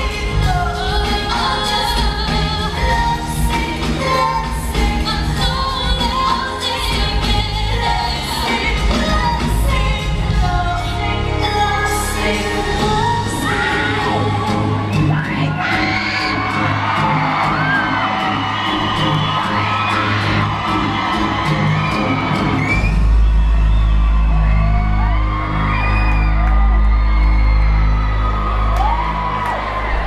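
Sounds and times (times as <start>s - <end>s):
crowd whooping and screaming: 0.0s - 30.0s
deep steady bass: 0.0s - 30.0s
live pop music over sound system: 0.0s - 30.0s.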